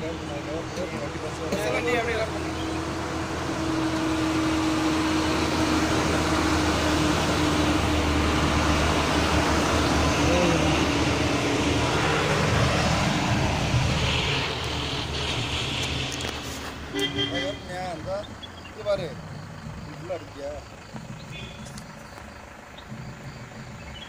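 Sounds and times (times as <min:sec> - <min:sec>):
bus engine and tyres humming: 0:00.0 - 0:24.0.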